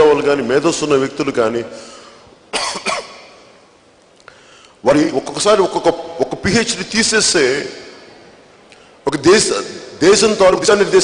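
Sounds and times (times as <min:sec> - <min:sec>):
man's amplified speech: 0:00.0 - 0:02.0, 0:04.8 - 0:08.0, 0:09.0 - 0:11.0
cough into microphone: 0:02.5 - 0:03.3.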